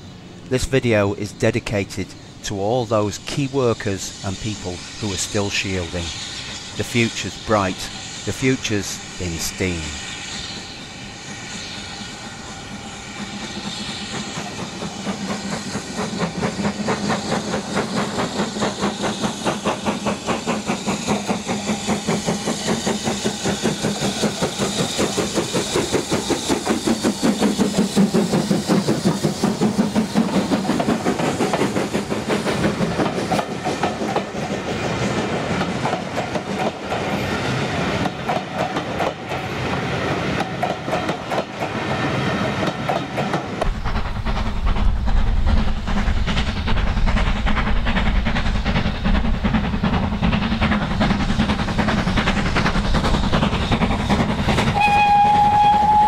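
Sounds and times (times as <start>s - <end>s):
steam hiss: 0.0s - 56.0s
steam locomotive exhaust beats: 0.0s - 56.0s
deep rumble: 43.6s - 49.9s.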